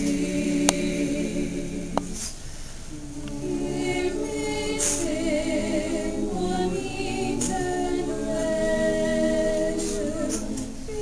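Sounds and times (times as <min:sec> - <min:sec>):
choir singing a cappella: 0:00.0 - 0:11.0.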